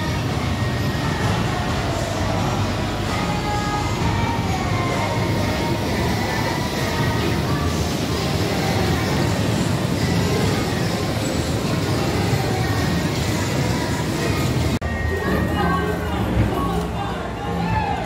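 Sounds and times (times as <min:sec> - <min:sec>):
music: 0:00.0 - 0:18.0
voices: 0:00.0 - 0:18.0.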